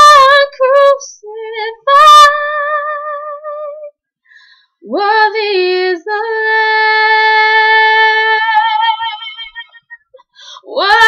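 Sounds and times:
woman singing unaccompanied: 0.0s - 3.9s, 4.8s - 9.9s, 10.5s - 11.0s.

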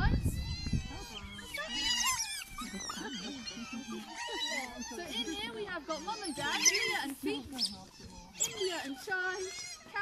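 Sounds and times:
otters squeaking and chirping: 0.0s - 10.0s.

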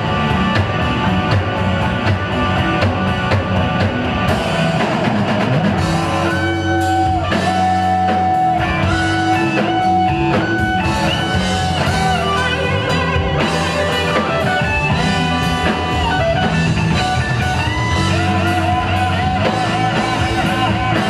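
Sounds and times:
bass guitar: 0.0s - 21.0s
drums: 0.0s - 21.0s
electric guitar lead: 0.0s - 21.0s.

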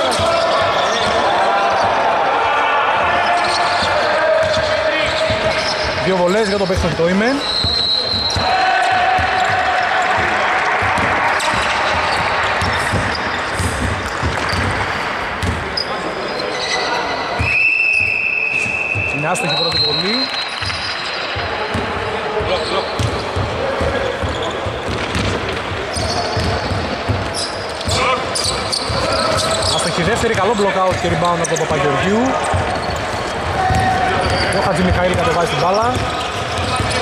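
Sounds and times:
players' voices: 0.0s - 37.0s
shoe squeaks: 3.2s - 10.2s, 11.3s - 21.7s, 22.4s - 25.2s, 25.9s - 26.7s, 27.3s - 37.0s
basketball bouncing on wooden court: 3.4s - 15.8s, 17.4s - 37.0s.

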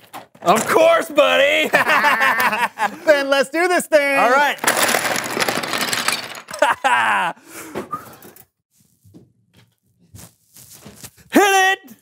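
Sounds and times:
wooden blocks clattering onto table: 4.2s - 6.9s.

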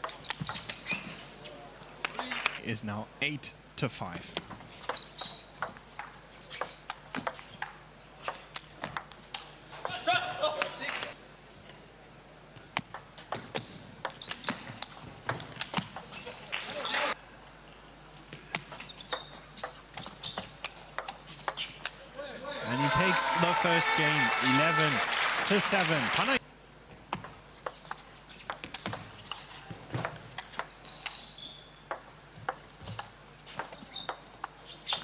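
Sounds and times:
crowd noise: 22.3s - 26.4s.

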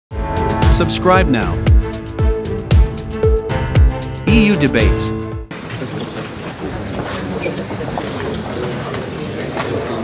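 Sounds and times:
hubbub of people: 5.5s - 10.0s.

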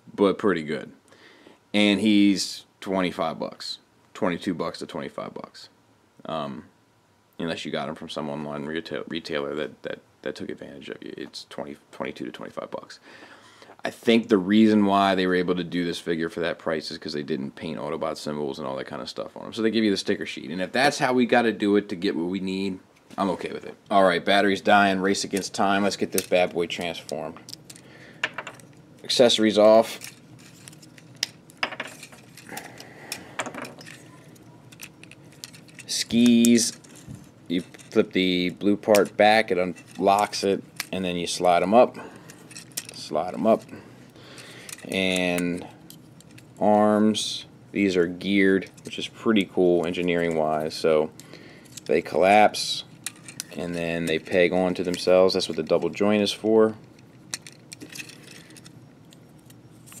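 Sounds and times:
plastic parts clicking: 32.0s - 38.0s, 56.9s - 58.7s
plastic toy parts clicking: 56.9s - 58.7s.

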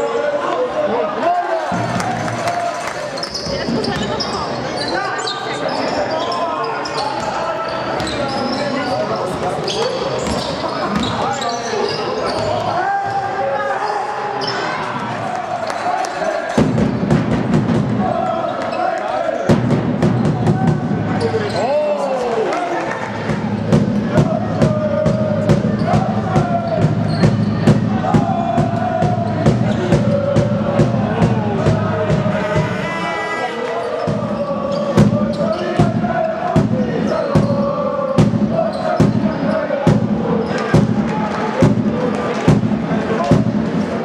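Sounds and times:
sneakers squeaking: 3.1s - 12.8s, 13.8s - 15.0s, 21.1s - 22.0s, 25.8s - 27.6s, 33.6s - 39.8s
crowd chanting: 11.9s - 44.0s
drum beaten steadily: 16.6s - 18.2s, 19.5s - 21.2s, 23.1s - 33.1s, 34.1s - 44.0s.

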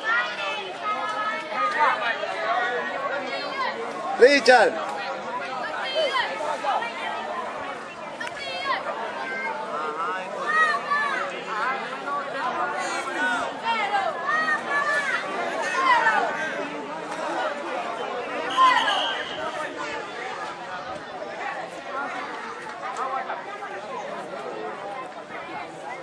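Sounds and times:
chatter of many voices: 0.0s - 26.0s.

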